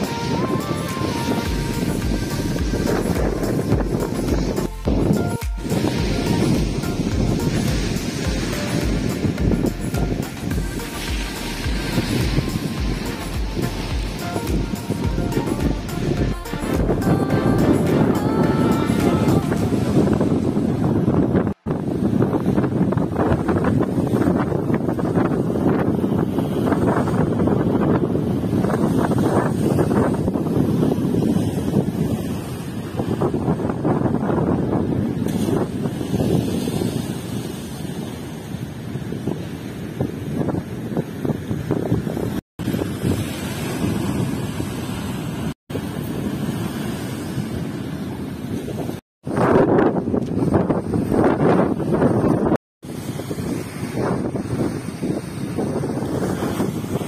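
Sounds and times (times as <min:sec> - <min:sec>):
waves breaking and splashing: 0:00.0 - 0:57.0
wind buffeting microphone: 0:00.0 - 0:57.0.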